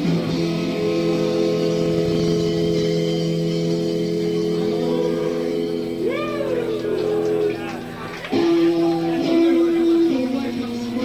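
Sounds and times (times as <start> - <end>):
electric guitar sustained chord: 0.0 - 11.0.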